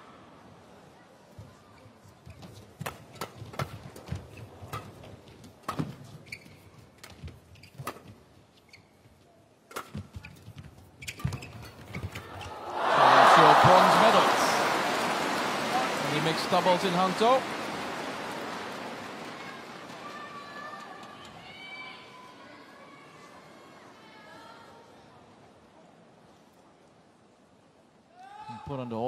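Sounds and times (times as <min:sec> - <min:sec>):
crowd cheering and applauding: 0:12.4 - 0:21.4.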